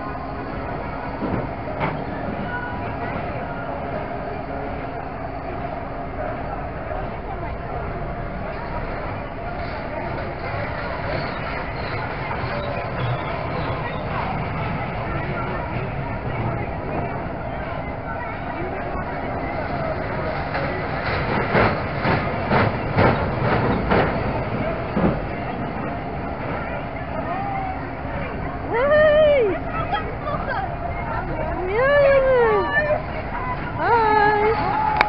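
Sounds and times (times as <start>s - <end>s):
fairground noise: 0.0s - 35.0s
people chattering: 0.0s - 35.0s
train wheels clattering on rail: 1.1s - 3.2s, 19.0s - 26.8s.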